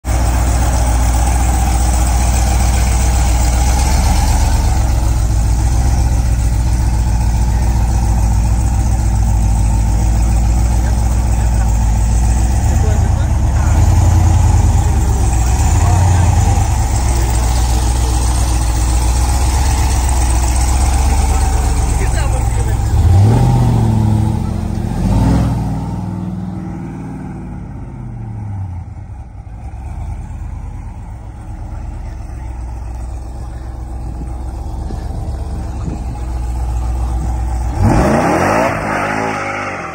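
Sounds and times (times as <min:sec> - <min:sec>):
truck engine idling and revving: 0:00.0 - 0:39.9.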